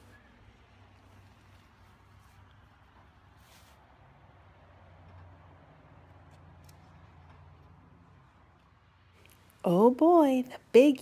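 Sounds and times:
soft rustle: 0.8 - 4.1.

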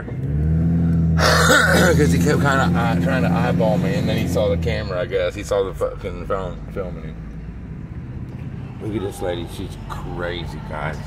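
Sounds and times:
car engine hum from cabin: 0.0 - 11.0.

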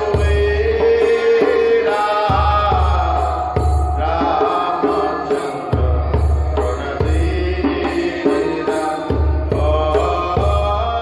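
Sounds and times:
devotional chant singing: 0.0 - 11.0
percussion strokes: 0.0 - 11.0.

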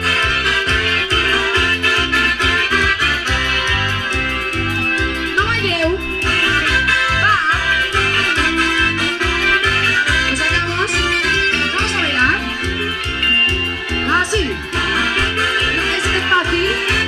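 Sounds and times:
live dance band playing: 0.0 - 17.0.

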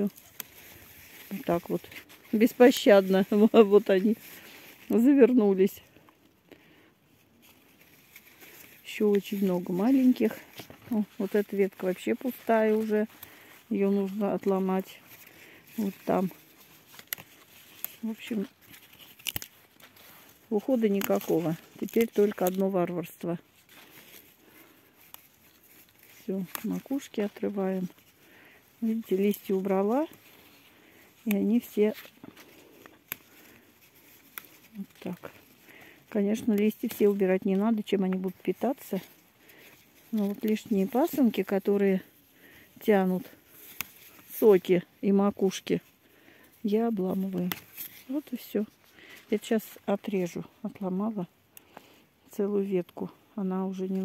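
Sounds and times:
person speaking: 0.0 - 0.6, 1.2 - 6.0, 8.8 - 19.4, 20.0 - 23.5, 26.0 - 33.6, 34.4 - 42.1, 42.7 - 43.4, 44.1 - 45.9, 46.6 - 51.4, 52.3 - 54.0
leaves rustling and scratching: 0.0 - 6.1, 7.1 - 51.2.

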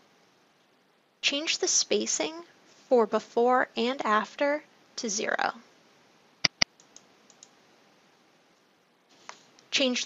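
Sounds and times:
faint computer mouse clicks: 6.4 - 7.6.

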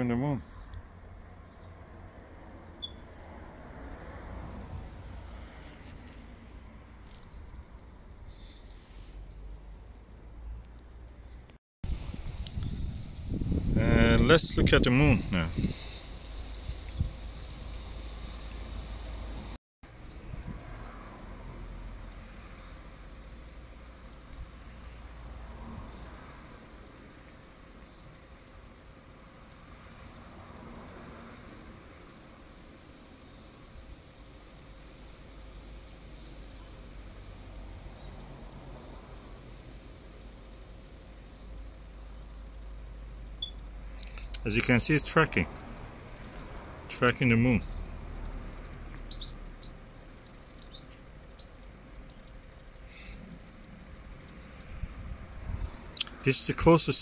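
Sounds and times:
faint high animal chirp: 2.8 - 3.0, 47.9 - 49.9.

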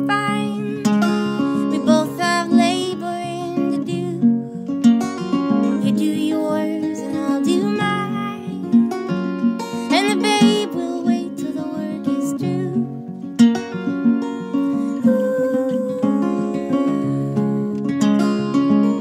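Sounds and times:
woman singing: 0.0 - 4.7, 5.6 - 8.9, 9.8 - 13.0, 14.7 - 17.8
plucked acoustic guitar: 0.0 - 19.0.

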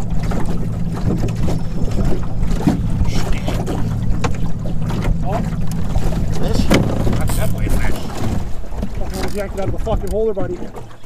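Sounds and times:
outboard motor running: 0.0 - 11.0
wind on microphone: 0.0 - 11.0.

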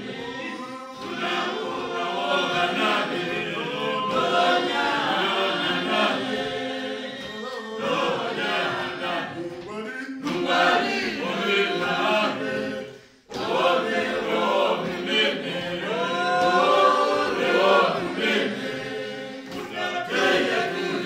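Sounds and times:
group singing a cappella hymn: 0.0 - 21.0.

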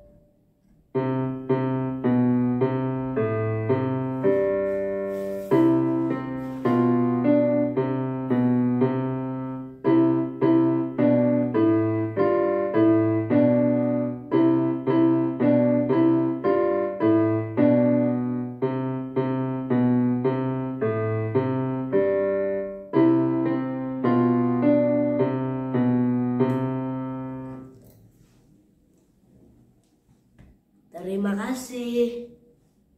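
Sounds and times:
keyboard playing slow hymn: 1.0 - 27.8.

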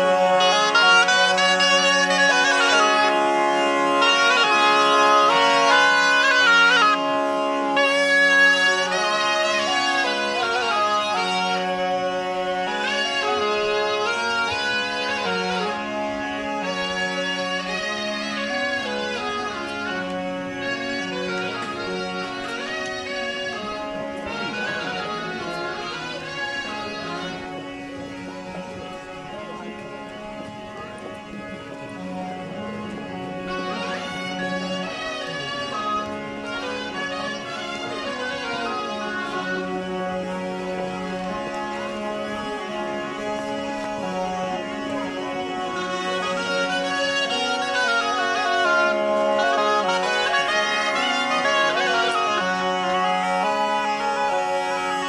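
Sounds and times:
bagpipe drone: 0.0 - 55.0
shawm playing melody: 0.0 - 55.0.

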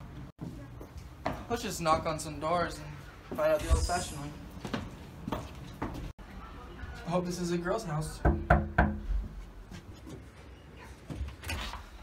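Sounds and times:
fist knocking on door: 8.2 - 9.0.

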